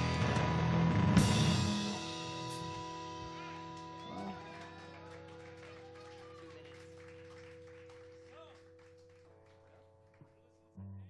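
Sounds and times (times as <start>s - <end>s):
rock band final chord: 0.0s - 10.0s
audience clapping: 3.2s - 10.6s.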